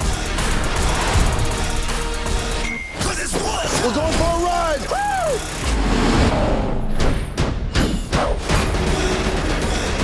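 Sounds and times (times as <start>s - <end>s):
film trailer music: 0.0s - 10.0s.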